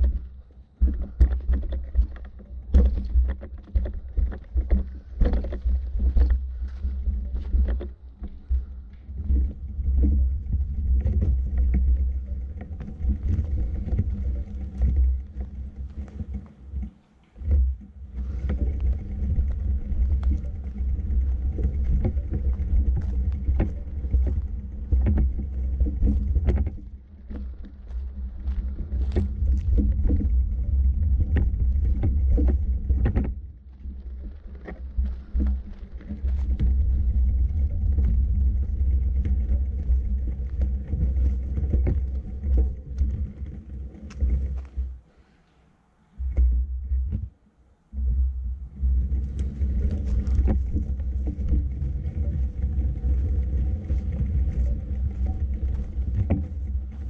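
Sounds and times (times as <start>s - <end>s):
wind buffeting microphone: 0.0s - 45.0s, 48.0s - 57.0s
footsteps crunching on dirt path: 0.0s - 45.5s, 48.8s - 57.0s.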